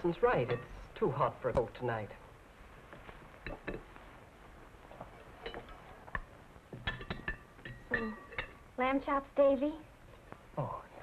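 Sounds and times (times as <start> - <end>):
tableware clinking: 0.2 - 0.9, 3.4 - 3.9, 5.4 - 8.7.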